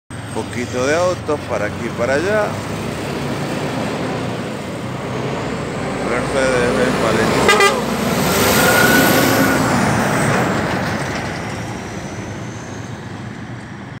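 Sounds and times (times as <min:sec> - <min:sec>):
truck driving past: 0:00.1 - 0:14.0.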